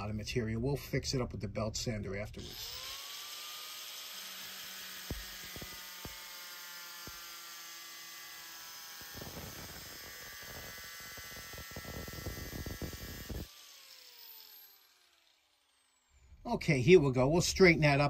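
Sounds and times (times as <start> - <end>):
grinder cutting metal: 2.4 - 16.1
angle grinder whine: 2.4 - 16.4.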